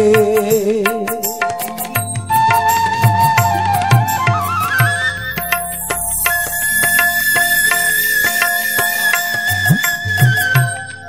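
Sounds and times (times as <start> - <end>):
held high melody note: 2.1 - 11.0.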